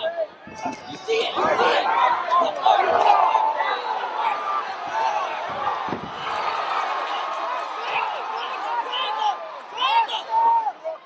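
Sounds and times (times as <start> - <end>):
spectators shouting: 0.0 - 11.0.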